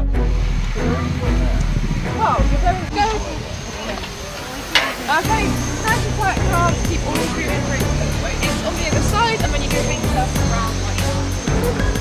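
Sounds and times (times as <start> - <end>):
murmur of voices: 0.8 - 12.0.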